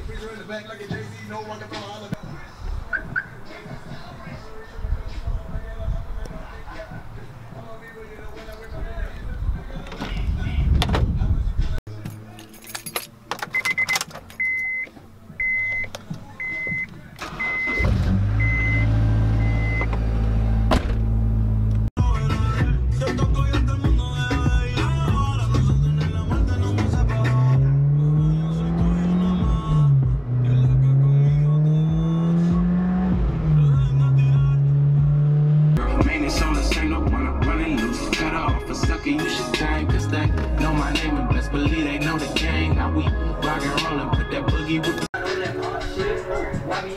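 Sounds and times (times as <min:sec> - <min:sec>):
car engine starting and idling: 0:13.1 - 0:45.0
car warning chime beeping: 0:13.5 - 0:19.9
car engine accelerating: 0:17.2 - 0:21.9, 0:22.8 - 0:44.0.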